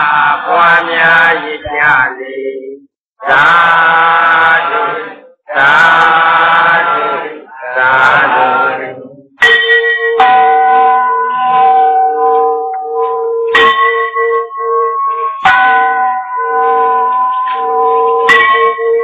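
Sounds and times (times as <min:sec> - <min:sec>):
bell-like chimes: 0:09.4 - 0:19.0.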